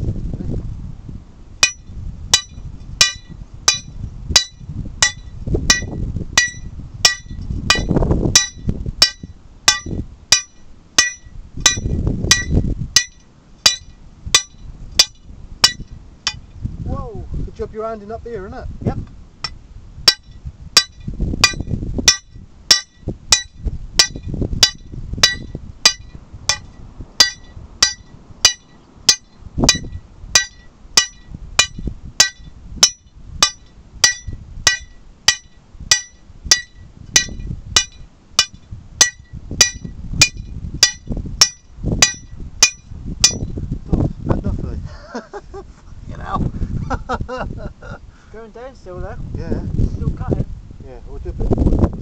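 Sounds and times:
hammer striking steel drill rod: 0:01.6 - 0:16.4, 0:19.4 - 0:43.5.

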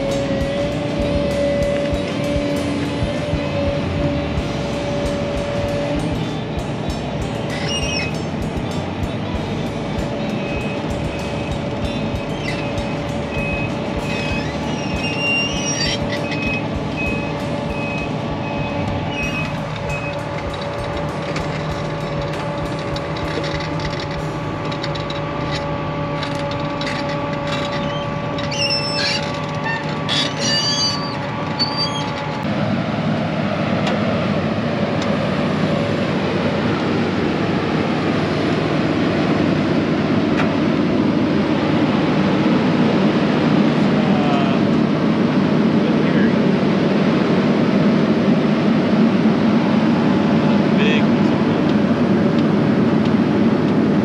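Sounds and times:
excavator engine running: 0:00.0 - 0:54.0
hydraulic whine: 0:00.0 - 0:54.0.

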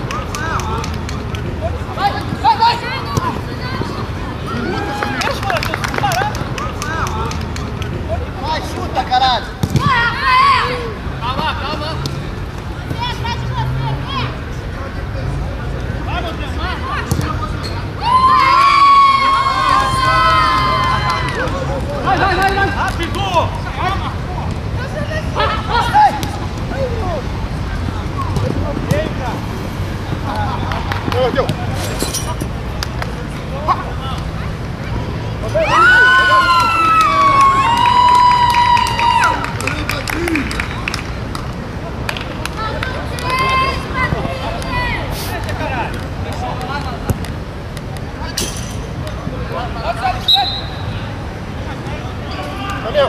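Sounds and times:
footballers shouting: 0:00.0 - 0:07.4, 0:08.3 - 0:12.0, 0:17.9 - 0:24.2, 0:35.4 - 0:40.7
short high whistle: 0:50.3 - 0:50.8.

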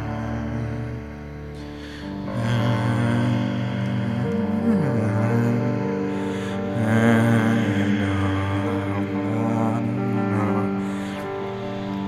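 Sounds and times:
slow dark piano music: 0:00.0 - 0:12.0.

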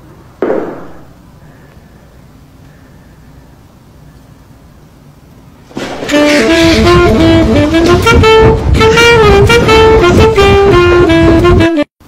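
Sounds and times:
steady low rumble: 0:00.0 - 0:11.5
saxophone quick melody: 0:05.8 - 0:11.9.

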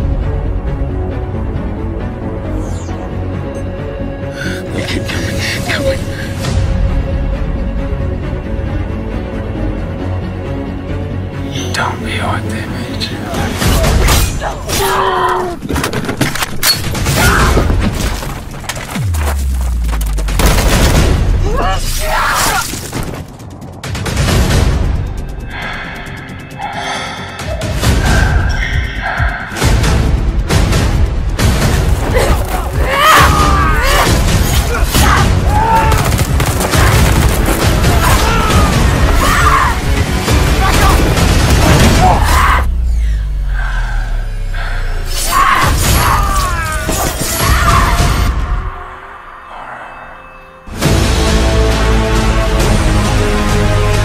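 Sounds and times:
dense trailer music with impact hits: 0:00.0 - 0:14.8, 0:16.4 - 0:48.8, 0:50.6 - 0:54.0
person crying out: 0:32.1 - 0:36.1, 0:37.9 - 0:39.9.

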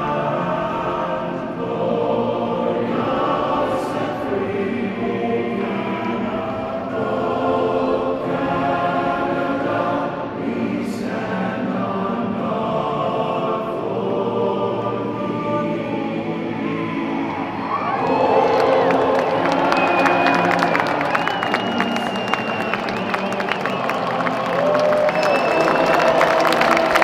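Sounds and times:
choir singing an anthem: 0:00.0 - 0:27.0.

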